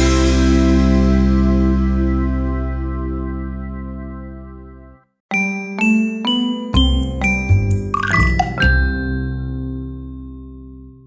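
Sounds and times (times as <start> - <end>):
music with deep bass: 0.0 - 5.0
bright chime notes: 5.3 - 10.8.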